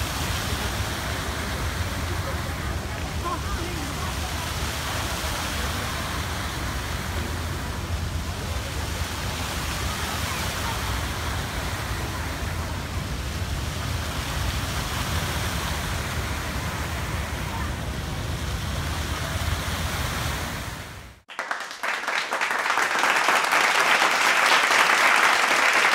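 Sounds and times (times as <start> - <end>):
fountain water jets splashing: 0.0 - 21.0
people applauding: 21.3 - 25.9.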